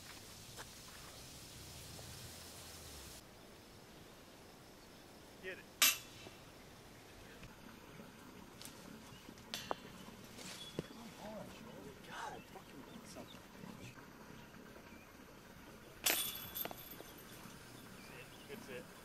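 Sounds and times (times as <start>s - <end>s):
disc clanking on chain basket: 16.0s - 17.6s.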